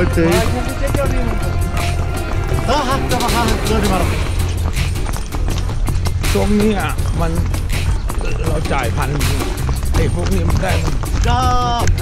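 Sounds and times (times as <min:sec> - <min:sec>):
hooves clip-clopping on dirt: 0:00.0 - 0:12.0
low rumble: 0:00.0 - 0:12.0.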